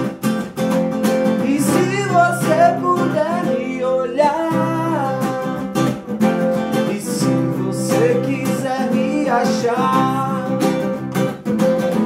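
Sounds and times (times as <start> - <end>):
acoustic guitar strumming: 0.0 - 12.0
man singing: 1.3 - 11.0.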